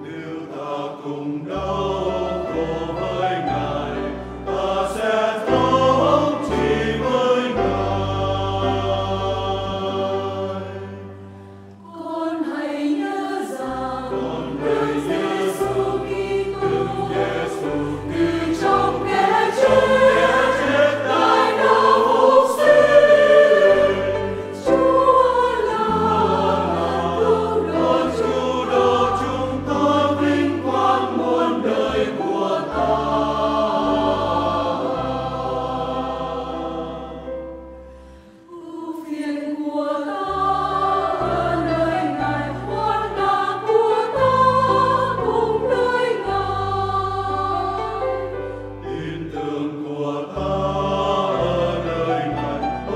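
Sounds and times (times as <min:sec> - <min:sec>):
choir singing a hymn: 0:00.0 - 0:52.9
piano: 0:00.0 - 0:52.9.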